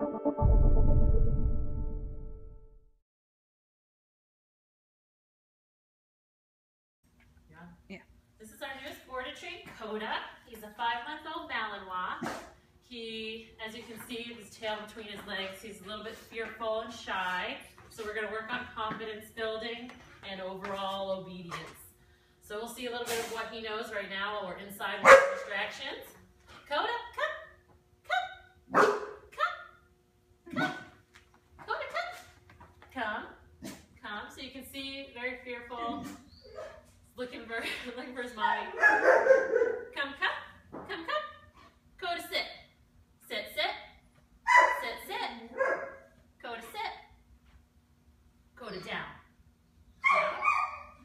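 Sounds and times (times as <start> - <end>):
dog barking: 25.0 - 25.5, 28.2 - 29.2, 30.5 - 30.9, 38.6 - 39.9, 44.5 - 44.9, 45.5 - 46.1, 50.0 - 51.0.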